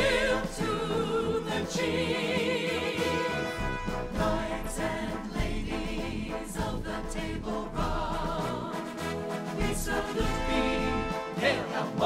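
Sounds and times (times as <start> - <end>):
choir singing sustained notes: 0.0 - 12.0
low musical accompaniment: 0.0 - 12.0.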